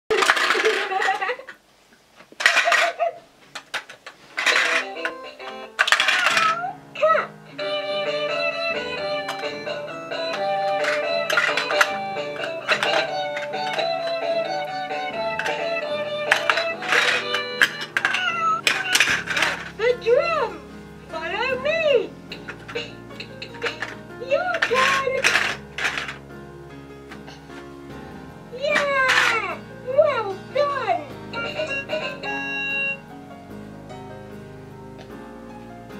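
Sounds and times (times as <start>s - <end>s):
plastic pieces clicking and rattling: 0.1s - 1.6s, 2.3s - 6.7s, 8.8s - 19.8s, 22.3s - 26.2s, 28.6s - 29.6s
toy drum electronic tune: 31.4s - 33.0s.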